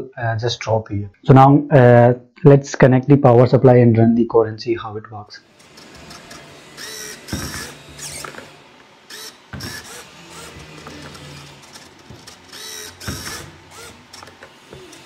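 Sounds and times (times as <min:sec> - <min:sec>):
servo motors whirring: 0:05.5 - 0:15.0.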